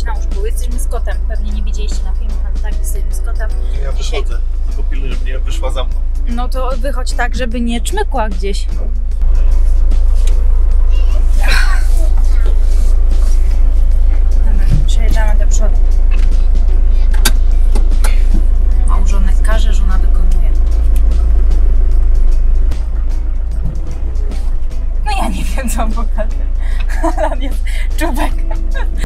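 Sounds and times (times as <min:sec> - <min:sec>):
background music: 0:00.0 - 0:29.0
loud low rumble: 0:00.0 - 0:29.0
faint voices: 0:10.7 - 0:13.8.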